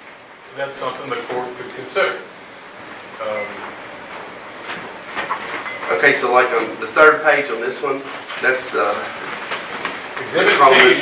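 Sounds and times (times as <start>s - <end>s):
room noise hiss: 0.0s - 11.0s
man speaking: 10.2s - 11.0s.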